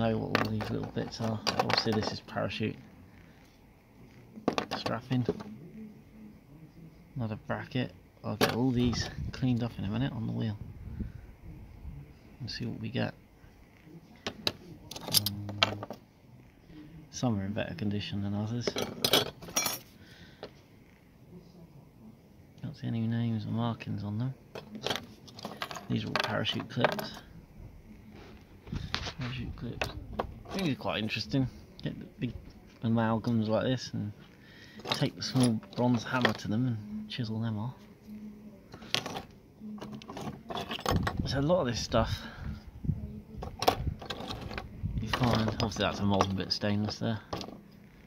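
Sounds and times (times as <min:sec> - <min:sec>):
metal pieces clinking: 0:24.6 - 0:27.2, 0:38.8 - 0:41.1.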